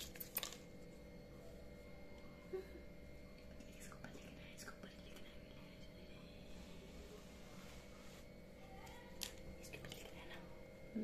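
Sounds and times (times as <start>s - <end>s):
faint whispering: 3.4s - 7.8s, 9.7s - 10.6s.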